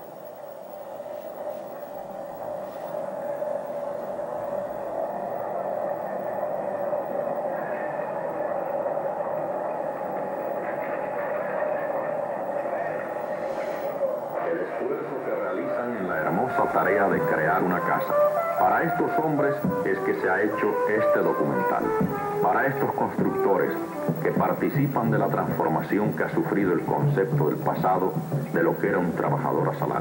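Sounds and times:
noisy film soundtrack drone: 0.0s - 30.0s.

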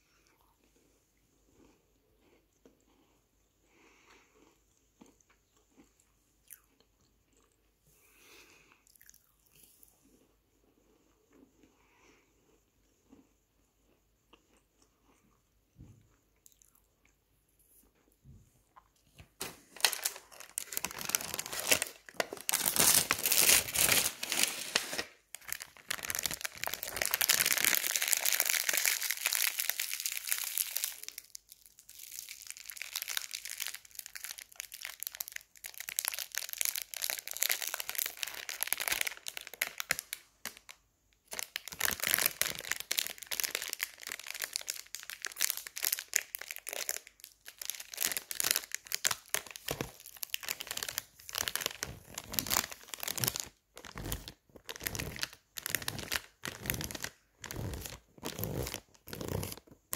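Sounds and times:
foil wrapper crinkling: 19.4s - 40.7s, 41.3s - 59.9s.

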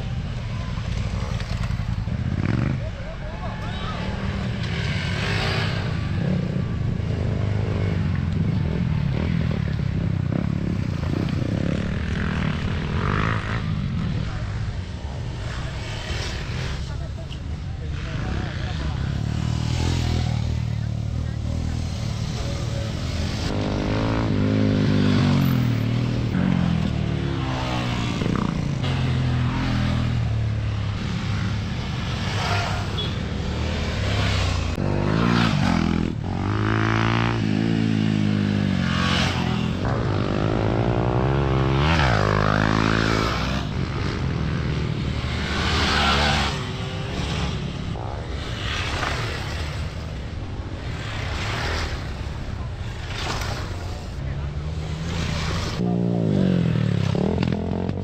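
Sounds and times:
off-road motorcycles revving past: 0.0s - 58.0s.

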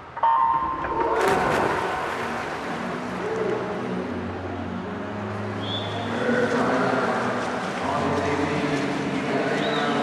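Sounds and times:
pool hall noise: 0.0s - 10.0s
swimmers diving splash: 0.8s - 3.9s.

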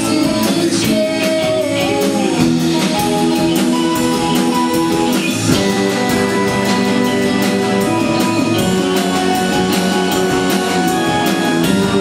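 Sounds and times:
live band playing: 0.0s - 12.0s.

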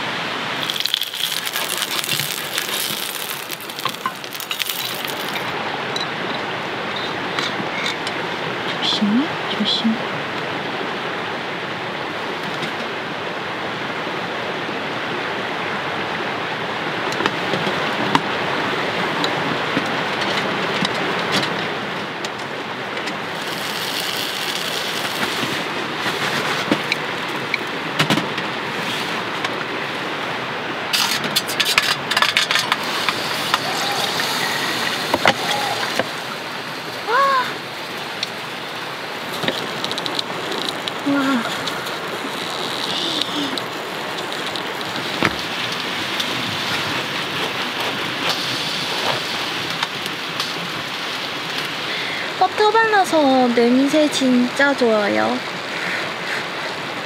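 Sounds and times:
sharp crackles and clicks: 0.5s - 6.1s, 22.2s - 27.7s, 30.9s - 51.8s
sandwich sizzling in pie iron: 0.6s - 5.5s, 23.4s - 25.6s, 39.3s - 45.3s.

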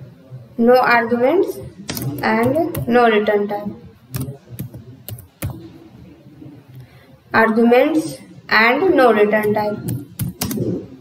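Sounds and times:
computer keyboard keystrokes: 1.9s - 2.9s, 4.1s - 5.6s, 9.4s - 10.7s.

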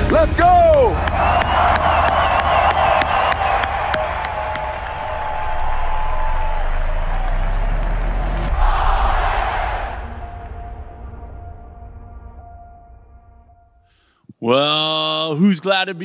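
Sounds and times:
crowd cheering and whooping: 0.7s - 10.1s.

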